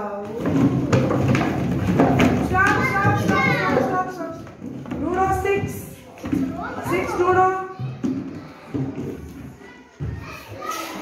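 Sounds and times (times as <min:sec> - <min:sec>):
young children murmuring: 0:02.5 - 0:04.5, 0:05.3 - 0:11.0.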